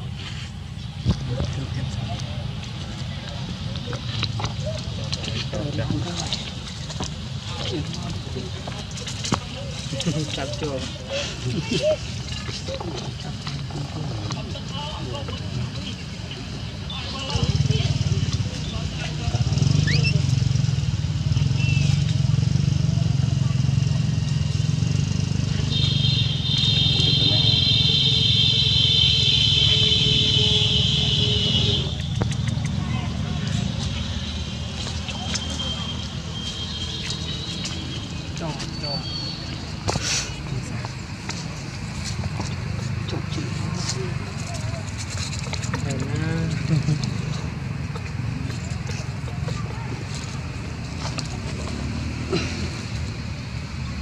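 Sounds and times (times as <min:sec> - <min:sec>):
faint indistinct voices: 0:00.0 - 0:21.4, 0:29.8 - 0:52.7.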